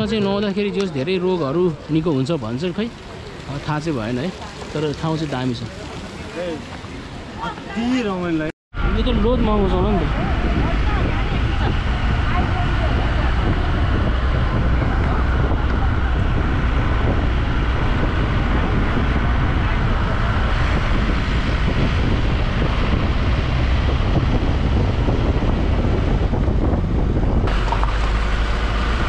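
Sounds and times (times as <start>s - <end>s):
wind rushing over microphone: 8.3s - 29.0s
vehicle driving low rumble: 8.8s - 29.0s.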